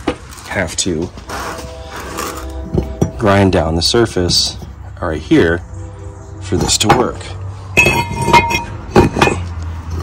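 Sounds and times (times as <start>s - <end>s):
metal parts knocking on concrete: 2.1s - 3.5s, 6.6s - 10.0s.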